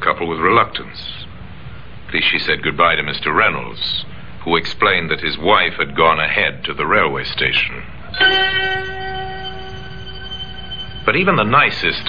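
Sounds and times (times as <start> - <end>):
bell-like musical note: 8.2 - 12.0.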